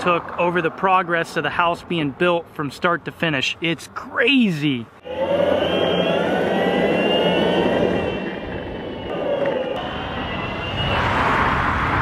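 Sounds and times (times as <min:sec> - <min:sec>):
wheels rumbling on asphalt: 0:00.0 - 0:03.5, 0:05.0 - 0:12.0
electric skateboard motor whine: 0:05.0 - 0:11.4
wind on microphone: 0:05.1 - 0:12.0.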